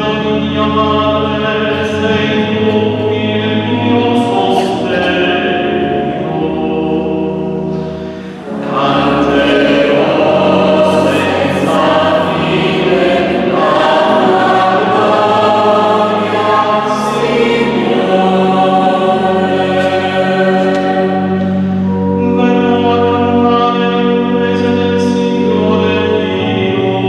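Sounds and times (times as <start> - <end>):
mixed choir singing in harmony: 0.0 - 27.0.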